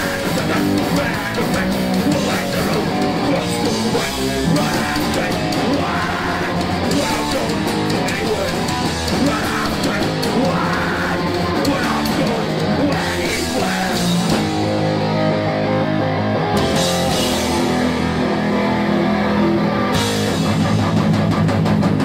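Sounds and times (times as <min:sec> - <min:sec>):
bass guitar: 0:00.0 - 0:22.0
distorted electric guitars: 0:00.0 - 0:22.0
drum kit: 0:00.0 - 0:22.0.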